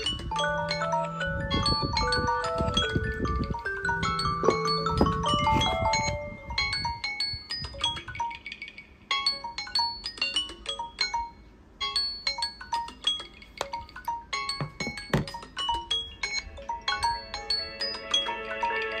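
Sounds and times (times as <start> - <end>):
marimba-like alarm ringtone: 0.0 - 19.0.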